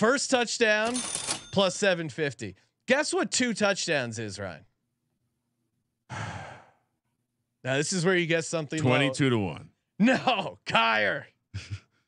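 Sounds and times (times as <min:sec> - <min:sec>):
man sighing: 0:06.1 - 0:06.8.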